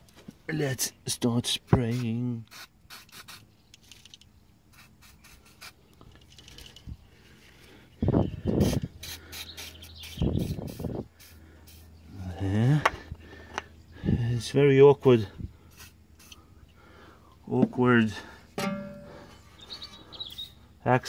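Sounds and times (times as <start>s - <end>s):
aerosol spray hissing: 1.9s - 3.4s.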